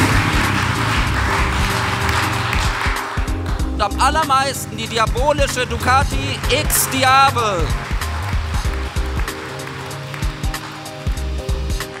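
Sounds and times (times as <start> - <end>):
motorcycle engine running low: 0.0 - 7.0
crowd applauding: 0.0 - 12.0.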